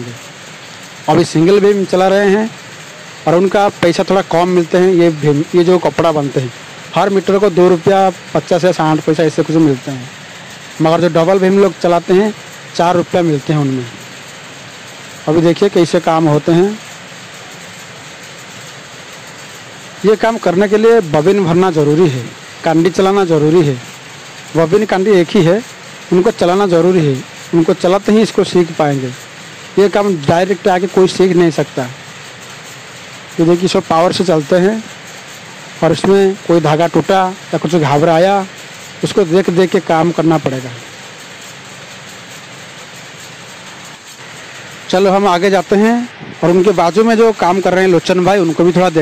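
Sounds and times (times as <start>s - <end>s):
powerlooms clattering: 0.0s - 49.0s.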